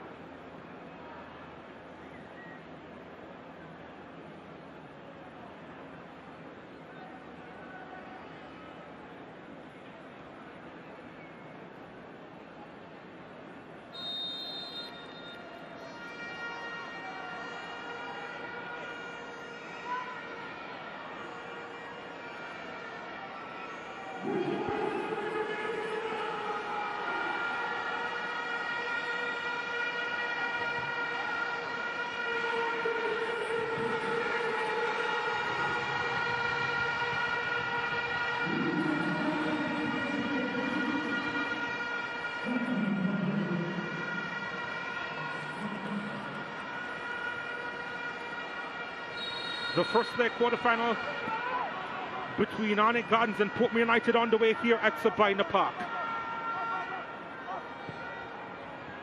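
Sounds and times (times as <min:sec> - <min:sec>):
low horn blasts: 0:24.2 - 0:51.4.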